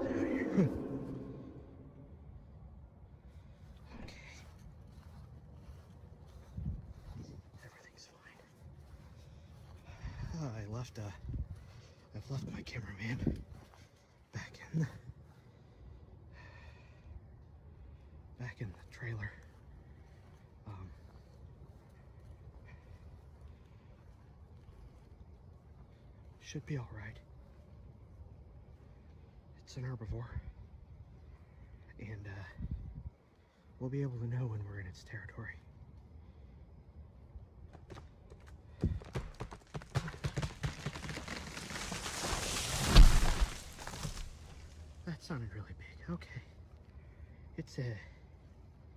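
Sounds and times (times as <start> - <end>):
rushing noise: 0.0 - 2.3
faint low rumble: 0.0 - 39.0
rustling: 40.3 - 45.0.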